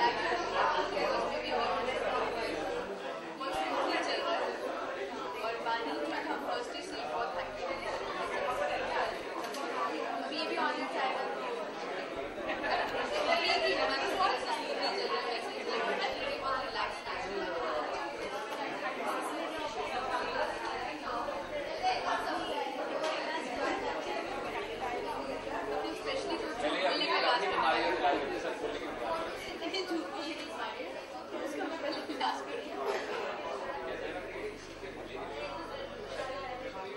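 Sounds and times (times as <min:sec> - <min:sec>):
background chatter: 0:00.0 - 0:36.9.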